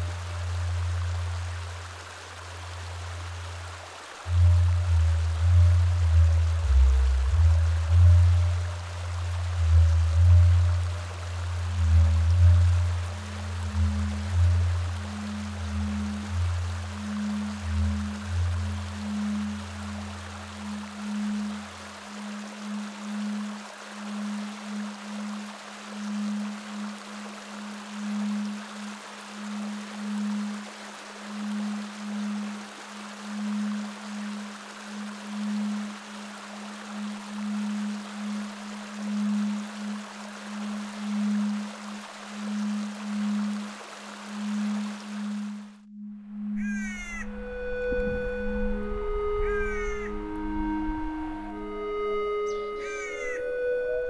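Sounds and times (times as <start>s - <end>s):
steady hiss: 0.0s - 45.9s
low rumble: 4.3s - 20.6s
pulsing low tone: 4.3s - 23.6s, 45.7s - 54.0s
held musical notes: 45.9s - 54.0s
harsh bird calls: 46.6s - 47.4s, 49.3s - 50.3s, 52.4s - 53.8s.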